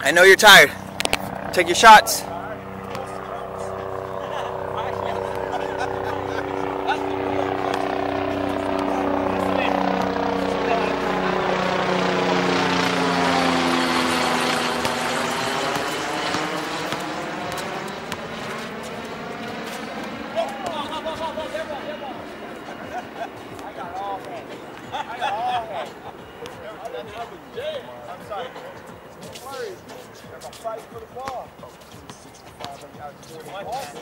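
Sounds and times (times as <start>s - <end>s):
aircraft engine drone: 0.0s - 31.1s.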